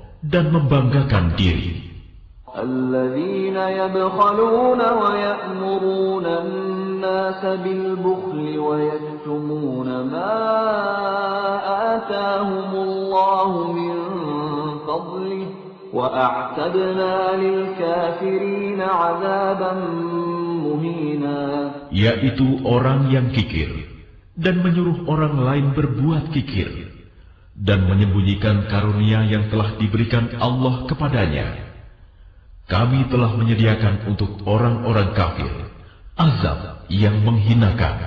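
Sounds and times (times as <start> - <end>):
man chanting melodically: 0.0 - 27.0, 27.6 - 31.8, 32.6 - 38.0.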